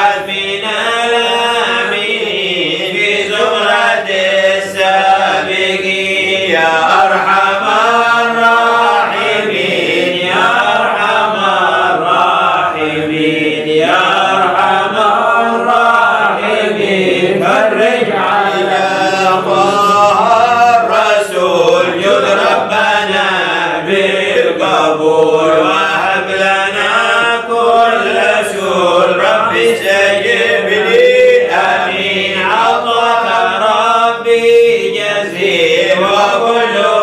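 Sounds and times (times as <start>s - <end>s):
man chanting unaccompanied: 0.0s - 37.0s.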